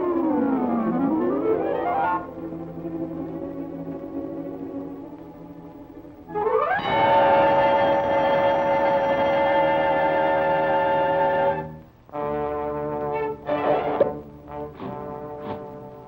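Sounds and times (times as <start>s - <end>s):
cartoon brass chords: 6.3s - 16.0s.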